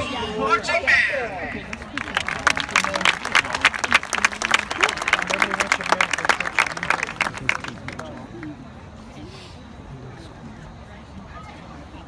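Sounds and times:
people's voices: 0.0s - 12.0s
audience applauding: 1.7s - 8.6s.

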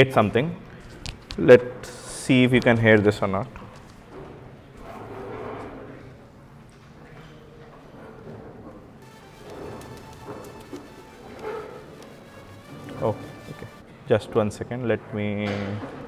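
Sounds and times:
faint pop music through laptop speakers: 9.0s - 13.8s.

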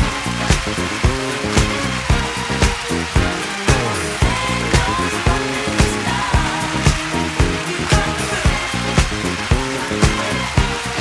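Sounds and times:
background music with driving beat: 0.0s - 11.0s.

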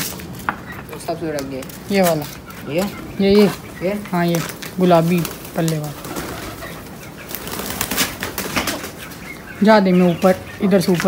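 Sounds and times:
pigeons clicking and rustling: 0.0s - 11.0s.

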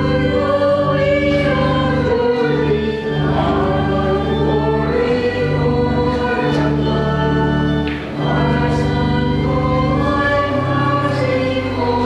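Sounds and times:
choir singing sacred music: 0.0s - 12.0s.

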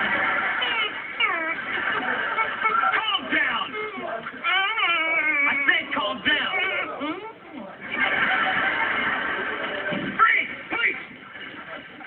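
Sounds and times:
television music: 0.0s - 12.0s
television voices: 0.0s - 12.0s.

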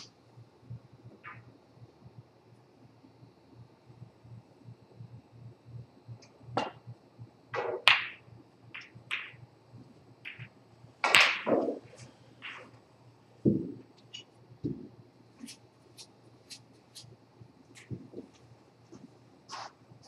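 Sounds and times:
snooker balls clicking: 6.6s - 6.8s, 7.6s - 9.4s, 10.2s - 12.8s
cue striking ball: 7.6s - 8.2s, 10.3s - 12.7s.

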